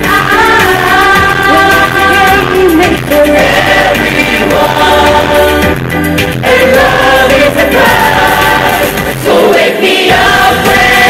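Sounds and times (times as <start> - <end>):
group singing in harmony: 0.0 - 11.0.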